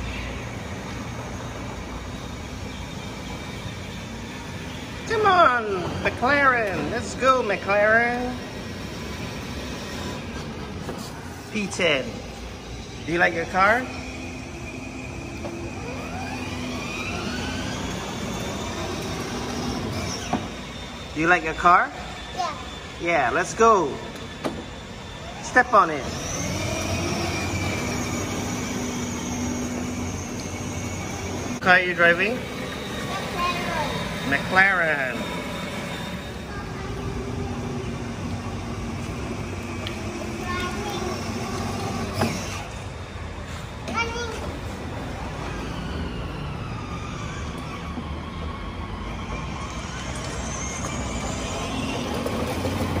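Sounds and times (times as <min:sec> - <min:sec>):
electric motors whining: 0:00.0 - 0:53.0
wheels rumbling on concrete: 0:00.0 - 0:53.0
child's voice: 0:22.2 - 0:22.9, 0:33.0 - 0:34.2, 0:36.4 - 0:37.7, 0:40.2 - 0:42.0, 0:43.8 - 0:44.8.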